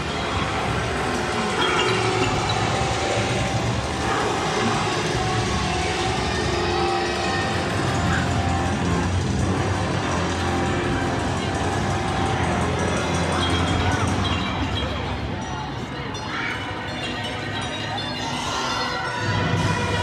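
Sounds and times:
sustained music tones: 0.0 - 20.0.

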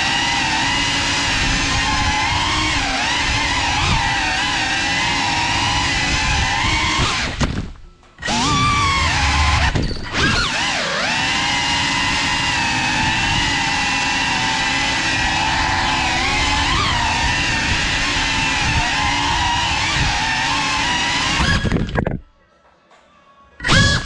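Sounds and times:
drone motors whining: 0.0 - 7.6, 8.2 - 22.2, 23.6 - 24.0.

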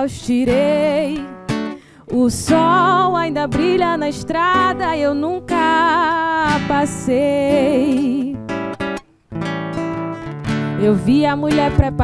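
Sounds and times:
woman singing: 0.0 - 1.4, 2.0 - 8.5, 10.7 - 12.0
nylon-string guitar strummed: 0.0 - 12.0.

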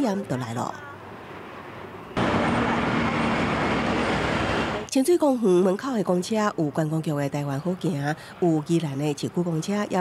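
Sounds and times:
faint street noise: 0.0 - 10.0
bus engine and tyre rush: 0.8 - 4.9.

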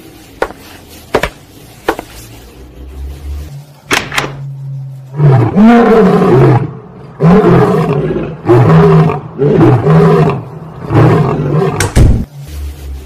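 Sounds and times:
lion roaring: 5.1 - 11.9.

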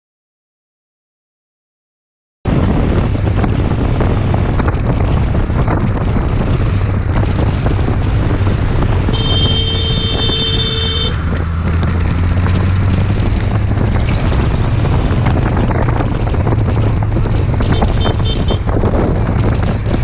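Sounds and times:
motorcycle engine running: 2.5 - 20.0
wind noise on microphone: 2.5 - 20.0
horn sounding: 9.1 - 11.2, 17.6 - 18.7.

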